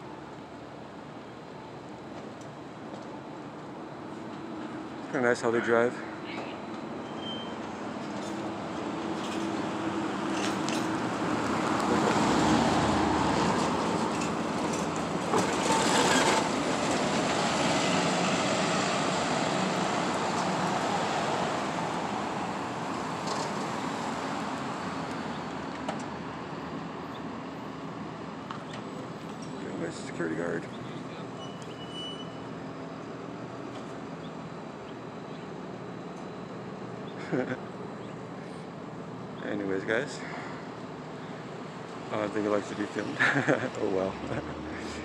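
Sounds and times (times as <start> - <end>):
bus driving past: 0.0 - 45.0.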